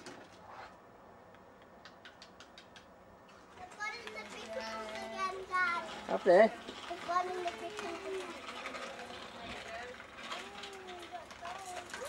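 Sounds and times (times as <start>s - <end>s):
child's sing-song voice: 6.9s - 8.4s.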